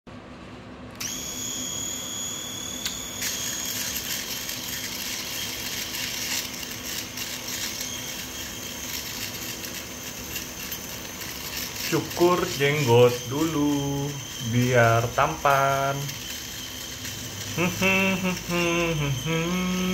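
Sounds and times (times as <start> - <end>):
electric shaver whining: 1.0 - 19.9
shaver cutting stubble crackling: 2.8 - 19.9.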